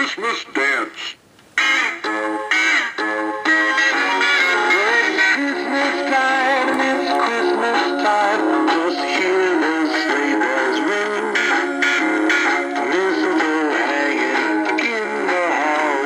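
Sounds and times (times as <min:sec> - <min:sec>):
christmas dance song with singing: 0:03.6 - 0:16.0.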